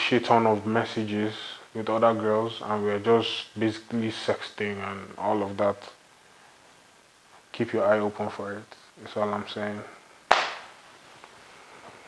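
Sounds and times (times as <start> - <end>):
sharp clap: 10.3 - 10.8.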